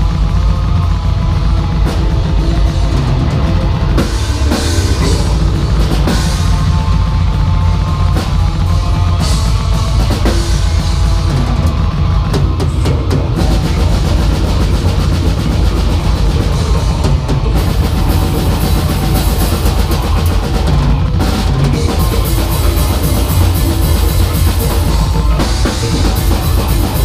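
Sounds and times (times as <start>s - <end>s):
cymbals: 0.0s - 27.0s
metal band playing live: 0.0s - 27.0s.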